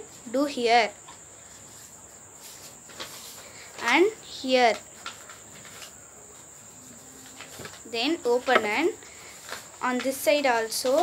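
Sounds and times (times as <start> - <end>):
cricket trill: 0.0 - 11.0.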